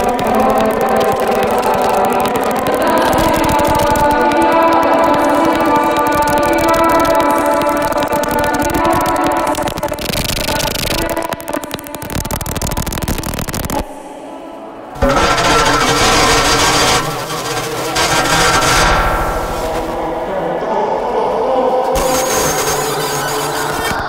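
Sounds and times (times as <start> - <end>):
electronic glitch music: 0.0 - 14.0, 15.0 - 20.3.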